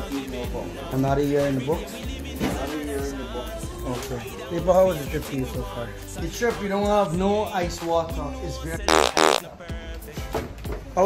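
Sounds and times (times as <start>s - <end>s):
background music: 0.0s - 11.0s
loud buzz: 8.9s - 9.4s.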